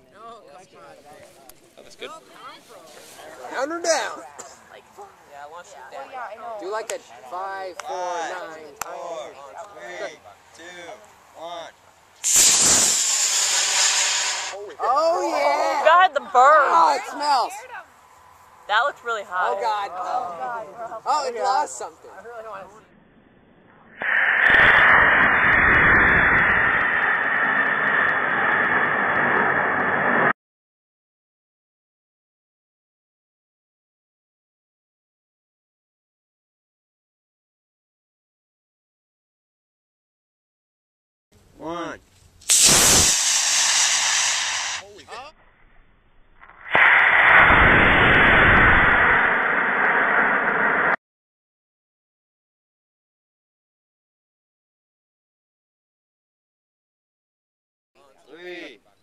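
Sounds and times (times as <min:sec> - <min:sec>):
rocket motor rushing hiss: 0:12.2 - 0:14.7, 0:24.0 - 0:30.3, 0:42.4 - 0:45.0, 0:46.6 - 0:51.0.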